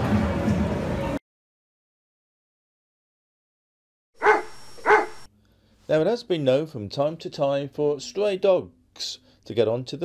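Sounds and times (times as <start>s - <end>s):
dog barking: 4.2s - 5.3s.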